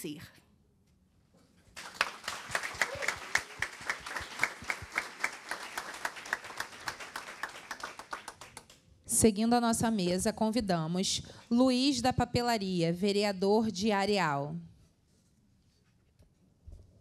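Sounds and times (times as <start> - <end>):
people clapping: 1.7 - 8.8.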